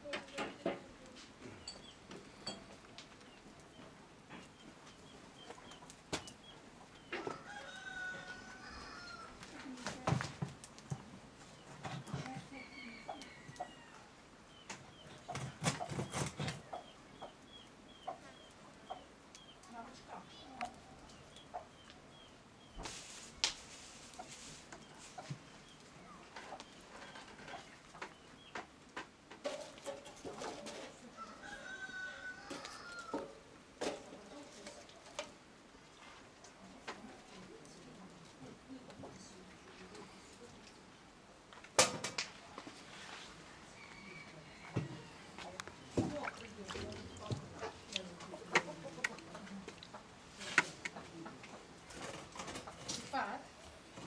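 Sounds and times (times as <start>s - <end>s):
small bird chirping: 1.5s - 2.6s.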